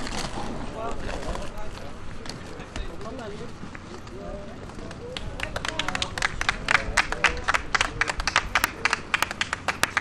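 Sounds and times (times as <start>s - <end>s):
people clapping: 4.7s - 10.0s.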